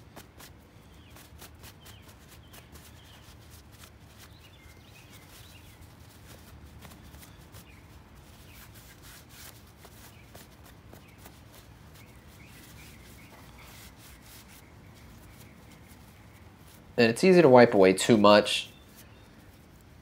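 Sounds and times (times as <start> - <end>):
paper towel rubbing and crinkling: 1.1 - 17.0.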